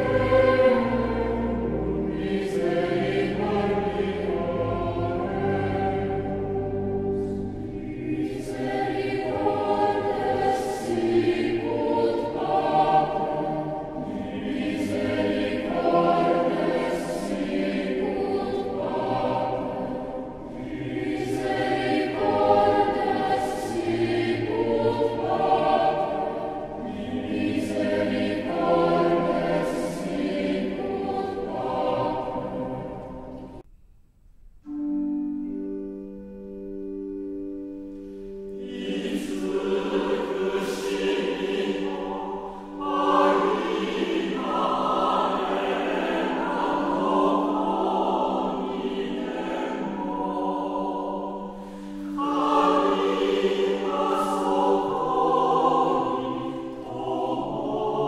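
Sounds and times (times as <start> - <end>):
choir singing: 0.0 - 33.7, 37.1 - 58.0.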